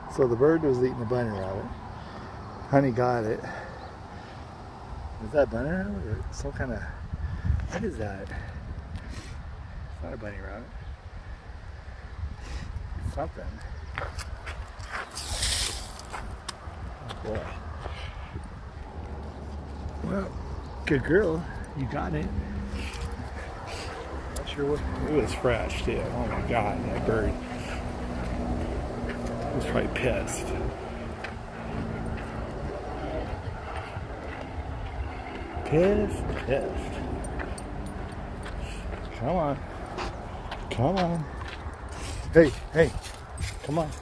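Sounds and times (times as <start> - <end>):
footsteps on gravel path: 13.9 - 44.0
hissing scrape: 15.0 - 16.1
low microphone rumble: 16.9 - 38.8.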